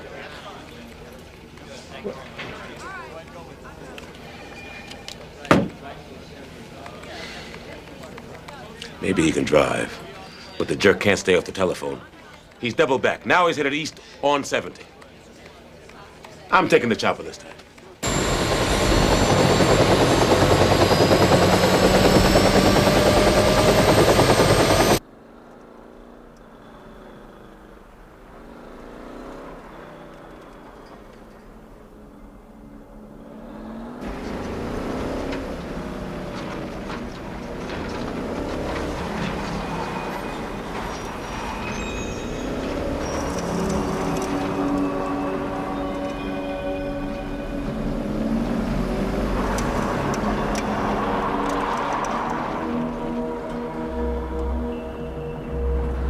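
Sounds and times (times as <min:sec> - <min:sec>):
helicopter with rising whine: 0:18.0 - 0:25.0, 0:29.8 - 0:56.0.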